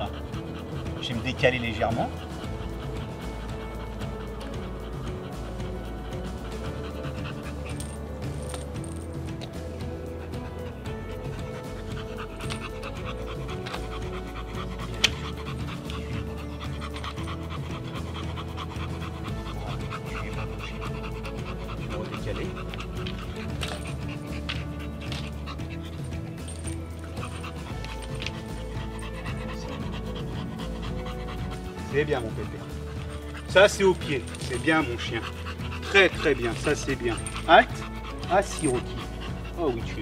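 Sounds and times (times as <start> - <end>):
background music: 0.0 - 40.0
dog panting: 0.0 - 40.0.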